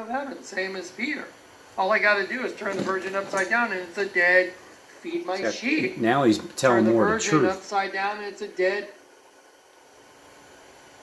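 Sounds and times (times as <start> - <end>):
faint recording hiss: 0.0 - 11.0.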